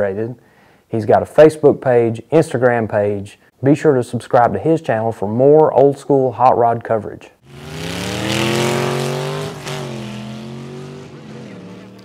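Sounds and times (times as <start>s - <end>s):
drag cars accelerating: 7.4s - 12.0s.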